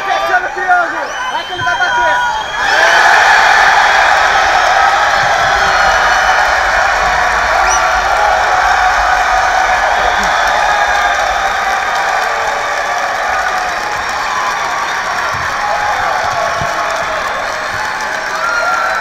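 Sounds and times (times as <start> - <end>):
crowd cheering and applauding: 0.0 - 19.0.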